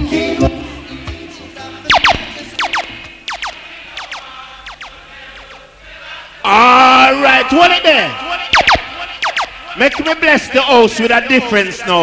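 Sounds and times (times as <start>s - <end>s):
reggae tune: 0.0s - 5.5s
falling laser siren zaps: 1.9s - 5.6s, 8.0s - 10.4s.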